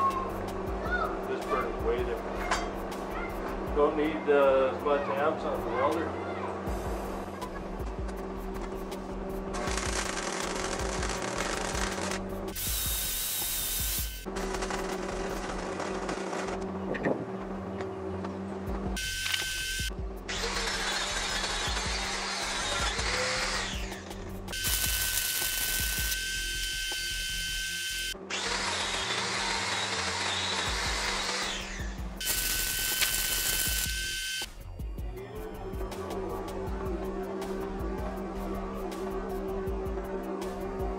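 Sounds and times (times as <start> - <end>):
background music: 0.0 - 16.0, 16.8 - 27.3, 28.2 - 40.9
angle grinder grinding steel: 9.6 - 14.2, 19.0 - 34.5.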